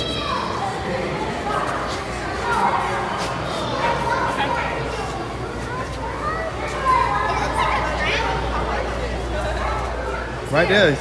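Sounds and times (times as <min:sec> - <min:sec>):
background chatter: 0:00.0 - 0:11.0
children's voices: 0:00.0 - 0:11.0.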